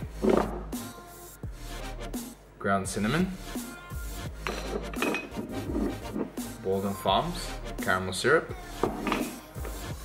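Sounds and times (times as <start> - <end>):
glass jars clinking: 4.4 - 6.3, 8.8 - 9.4
glass jars scraping on countertop: 4.4 - 6.4, 8.8 - 9.4.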